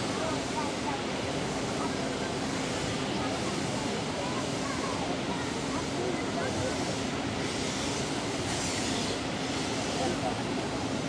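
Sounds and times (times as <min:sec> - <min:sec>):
steam hissing: 0:00.0 - 0:11.0
steam locomotive running: 0:00.0 - 0:11.0.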